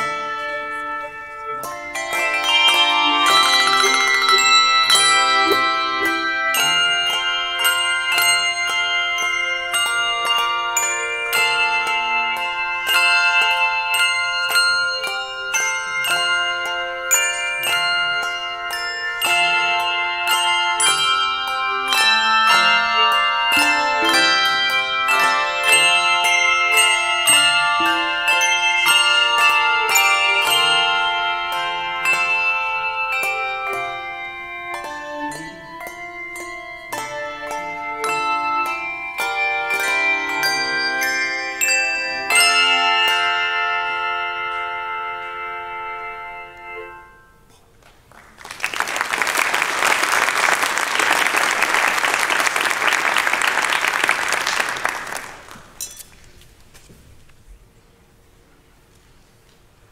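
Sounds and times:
handbell choir playing: 0.0s - 47.6s, 48.4s - 56.1s.

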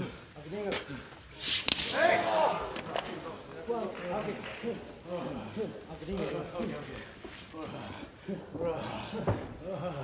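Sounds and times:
sharp impact crack: 1.4s - 2.3s
men shouting and grunting: 1.7s - 6.9s, 7.6s - 10.0s.

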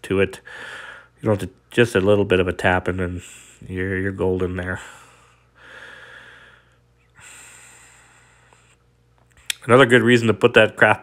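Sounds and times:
man breathing softly: 0.4s - 1.2s, 4.8s - 8.9s.

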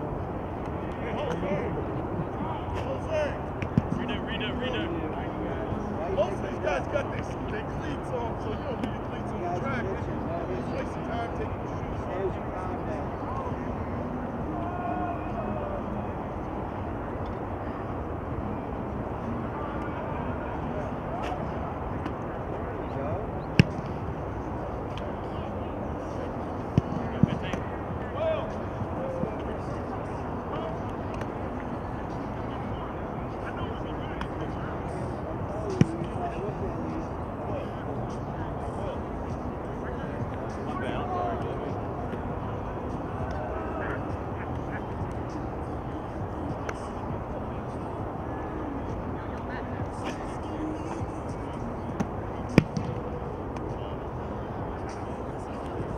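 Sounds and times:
distant voices: 0.0s - 55.9s
steady outdoor noise: 0.0s - 55.9s.

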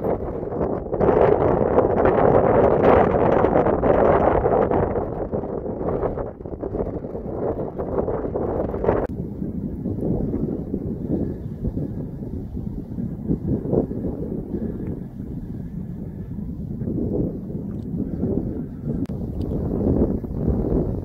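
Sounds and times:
wind gusting on microphone: 0.0s - 21.0s.

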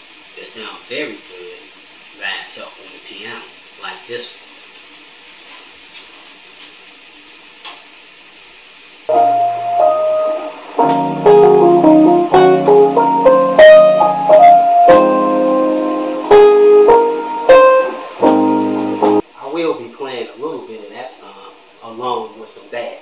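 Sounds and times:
room hiss: 0.0s - 23.0s
digital keyboard piano: 9.1s - 19.2s.

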